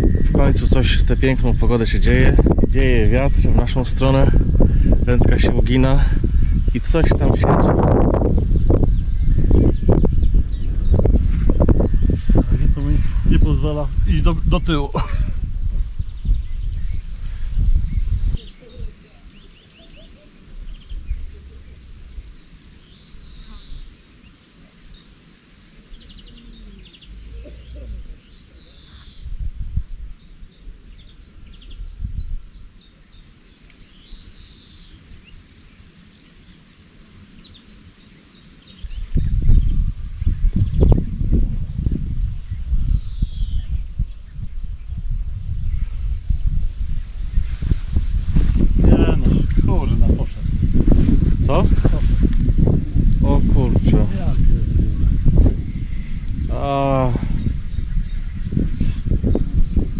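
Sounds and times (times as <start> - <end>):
loud low rumbling: 0.0 - 18.4, 38.8 - 59.9
songbird singing: 0.0 - 59.9
bird chirps and trills: 16.0 - 29.4, 30.2 - 45.0, 53.0 - 59.9.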